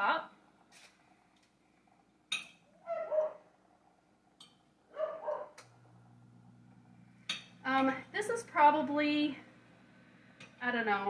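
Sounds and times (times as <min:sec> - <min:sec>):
low steady hum: 0:00.0 - 0:11.0
dog barking: 0:02.9 - 0:03.4, 0:04.9 - 0:05.6.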